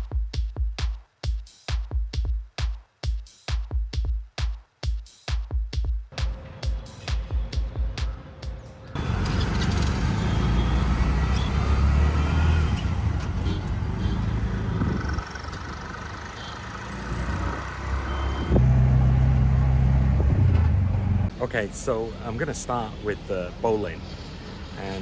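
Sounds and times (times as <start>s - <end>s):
electronic dance music: 0.0s - 8.6s
street traffic: 6.1s - 25.0s
auto-rickshaw engine running: 9.0s - 21.7s.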